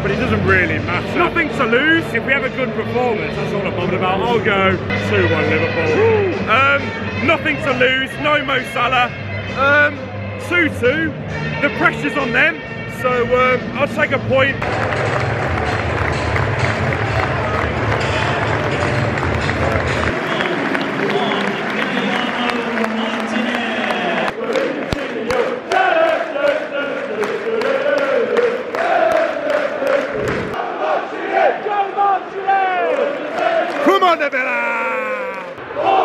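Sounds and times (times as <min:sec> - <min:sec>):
stadium crowd cheering and clapping: 0:14.6 - 0:36.0
fans chanting in unison: 0:23.7 - 0:34.3, 0:35.6 - 0:36.0.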